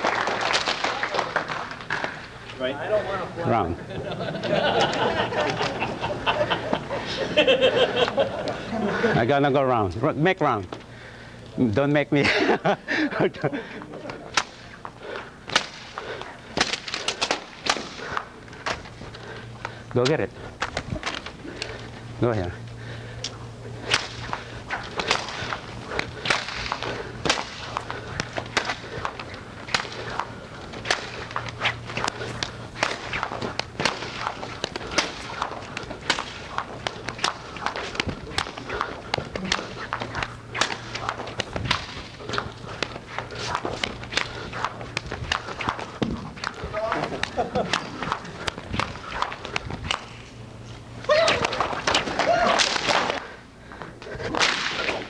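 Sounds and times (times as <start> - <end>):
steady low hum: 0.0 - 55.0
sharp slaps and cracks of strikes: 14.0 - 14.7, 15.4 - 18.9, 23.2 - 50.2, 51.0 - 53.3, 54.2 - 55.0.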